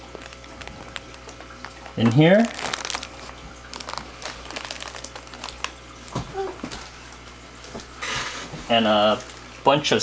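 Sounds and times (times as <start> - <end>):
plastic bags crinkling: 0.0 - 7.0.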